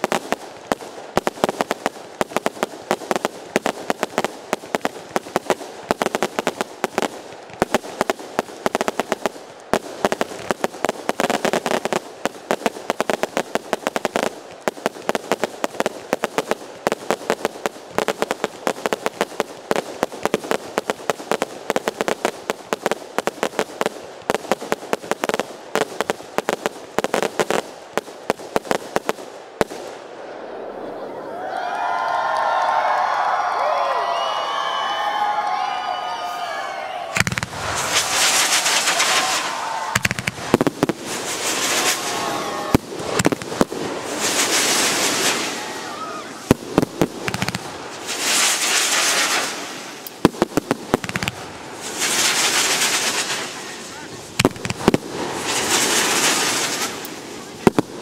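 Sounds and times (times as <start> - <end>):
fireworks bursting bangs: 0.0 - 31.0, 37.1 - 58.0.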